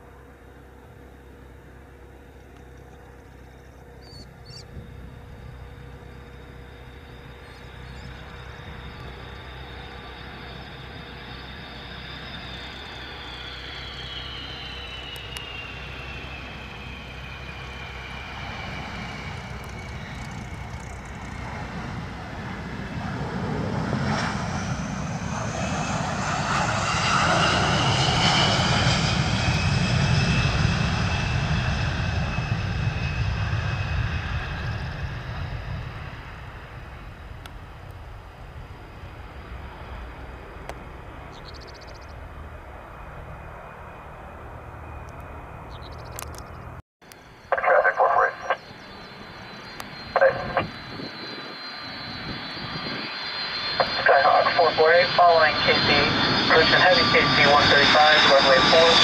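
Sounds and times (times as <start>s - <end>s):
jet engines whining: 0.0s - 59.0s.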